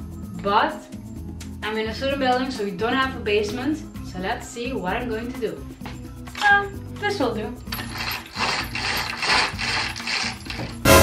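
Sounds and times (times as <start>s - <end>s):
roller blind ratcheting down: 7.7s - 11.0s.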